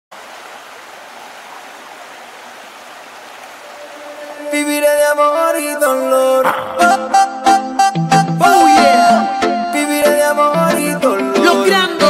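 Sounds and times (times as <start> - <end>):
held musical tone: 6.8 - 11.9.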